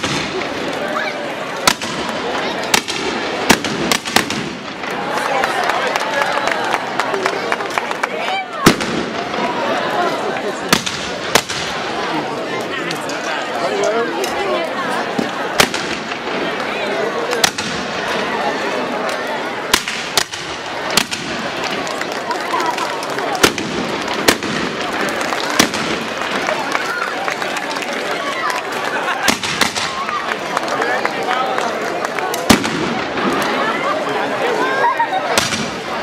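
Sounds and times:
shotgun blasts: 0.0 - 0.5, 2.7 - 4.8, 32.5 - 33.3
chatter of large crowd: 0.0 - 36.0.

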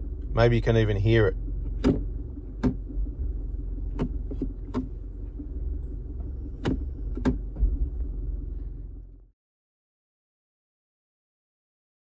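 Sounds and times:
diesel engine idling: 0.0 - 9.3
gear selector clicks: 1.6 - 3.2, 3.8 - 5.4, 6.2 - 7.6
transmission engaging thump: 1.6 - 8.3.

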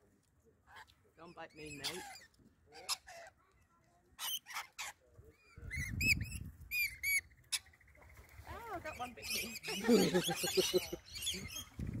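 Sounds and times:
lorikeets screeching: 1.4 - 3.3, 8.5 - 11.8.

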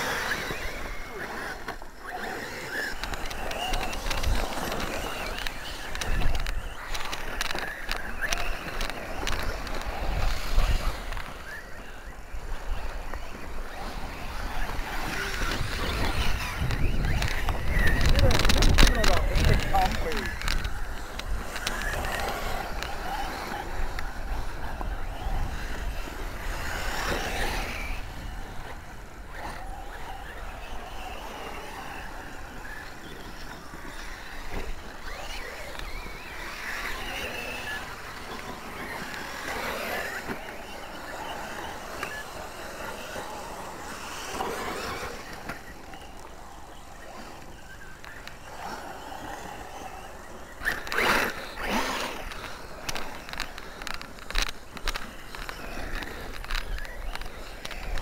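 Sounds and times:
buggy driving over grass and dirt: 0.0 - 58.0
rc buggy motor revving: 0.0 - 58.0.

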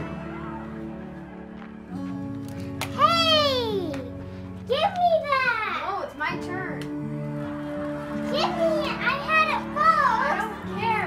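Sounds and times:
background music with held notes: 0.0 - 11.0
children calling out: 2.9 - 4.0, 8.2 - 11.0.

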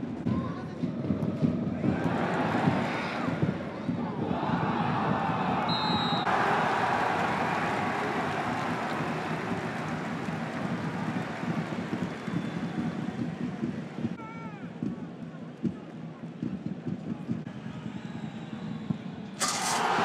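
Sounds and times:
stadium crowd noise: 0.0 - 20.0
shrill referee whistle blast: 5.7 - 6.3.

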